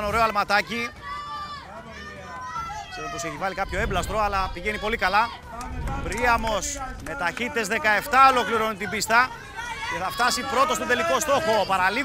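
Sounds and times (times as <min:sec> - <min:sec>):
distant voices shouting: 0:00.4 - 0:12.0.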